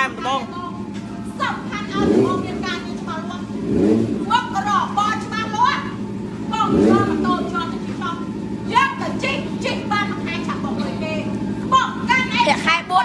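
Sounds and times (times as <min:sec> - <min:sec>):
motorcycle engine idling and revving: 0:00.0 - 0:13.0
people talking: 0:00.0 - 0:13.0.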